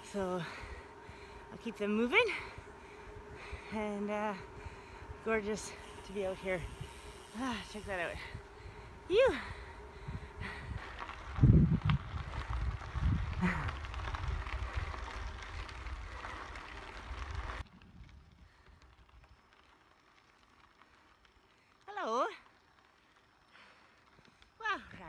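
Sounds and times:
wind buffeting microphone: 0.0s - 18.9s.

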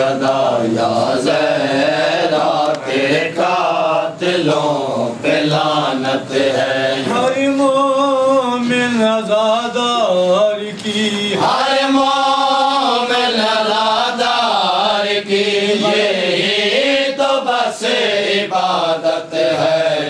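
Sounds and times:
men chanting a lament: 0.0s - 20.0s.

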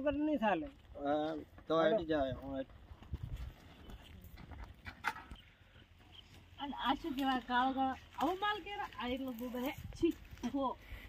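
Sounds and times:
footsteps on loose soil: 5.8s - 11.0s.

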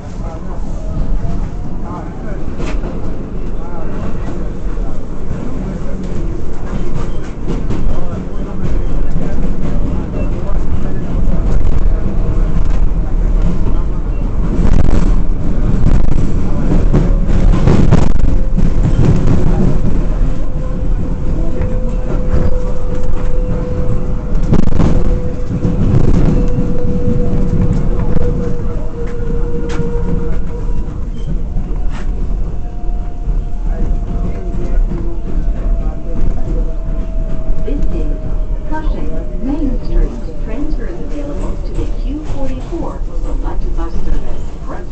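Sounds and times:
rumble of wheels on rail: 0.0s - 44.9s
higher whine: 15.8s - 41.8s.

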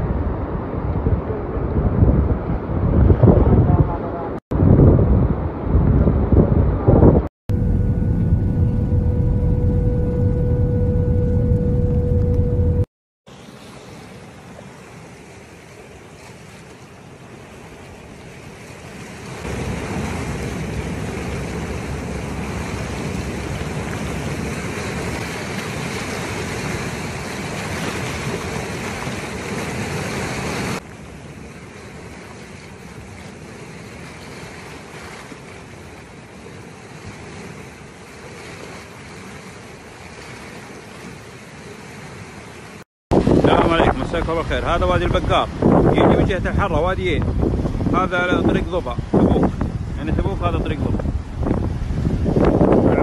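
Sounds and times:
wind on microphone: 0.0s - 12.9s, 43.1s - 53.0s
rushing flood water: 13.3s - 53.0s.

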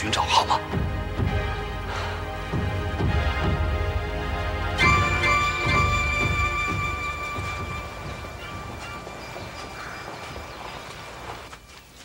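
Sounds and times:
drama soundtrack music: 0.0s - 11.2s
faint outdoor ambience: 0.0s - 12.0s.

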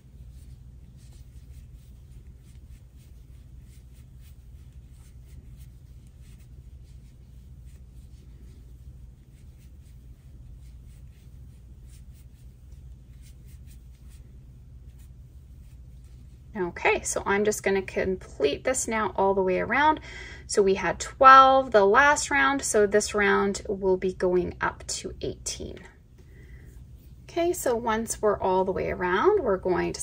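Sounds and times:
yarn rubbing on crochet hook: 0.0s - 17.8s
steady low hum: 0.0s - 30.0s.

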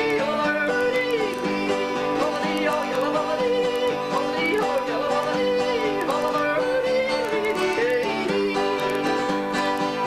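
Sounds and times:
acoustic guitars playing country: 0.0s - 10.0s.

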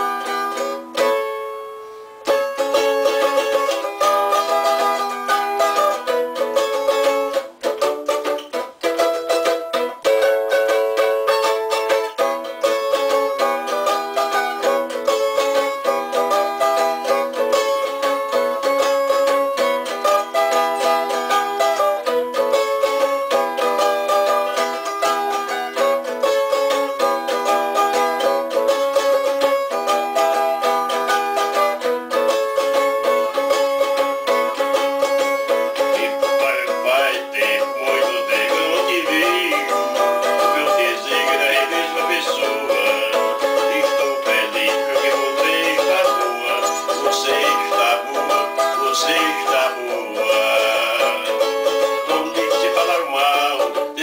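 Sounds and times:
small guitar plucked tune: 0.0s - 54.0s.

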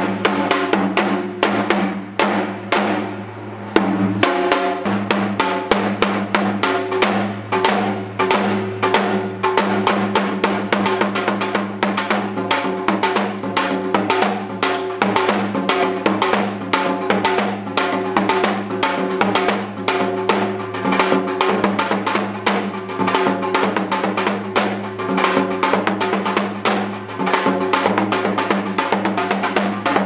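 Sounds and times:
hourglass drum strokes: 0.0s - 30.0s.

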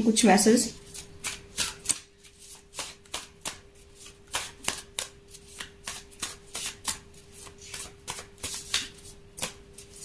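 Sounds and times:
cards shuffling: 0.8s - 10.0s.

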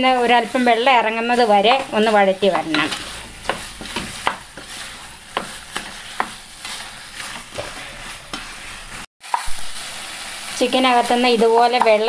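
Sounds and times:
chicken sizzling in a wok: 0.0s - 12.0s
wooden spatula scraping a pan: 0.0s - 12.0s.

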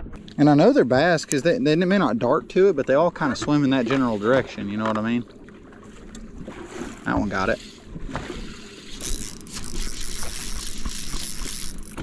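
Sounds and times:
fish splashing in water: 3.6s - 12.0s.

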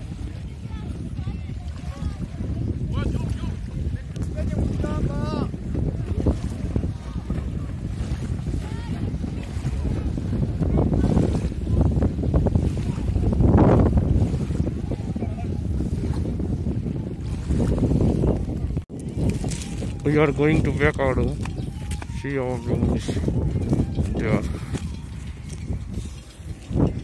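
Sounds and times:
sea surf washing: 0.0s - 27.0s
wind buffeting microphone: 0.0s - 27.0s.

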